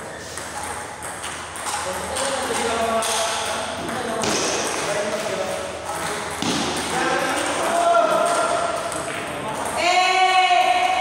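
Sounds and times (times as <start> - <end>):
people talking: 1.8 - 11.0.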